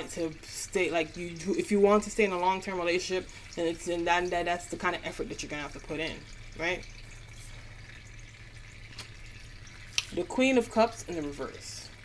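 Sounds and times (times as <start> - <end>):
tabletop fountain trickling: 0.0 - 12.0.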